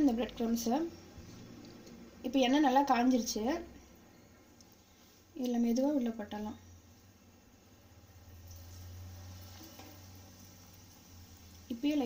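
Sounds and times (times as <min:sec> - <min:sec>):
cutlet sizzling in hot oil: 0:08.0 - 0:12.0.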